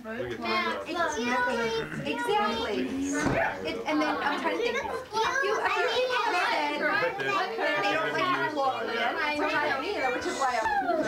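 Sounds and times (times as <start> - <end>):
overlapping conversational chatter: 0.0 - 11.0.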